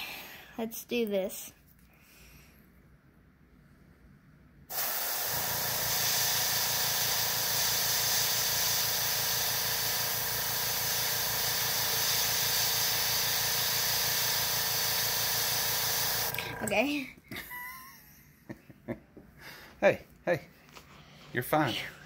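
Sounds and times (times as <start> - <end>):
airbrush hiss of compressed air: 4.7 - 16.3.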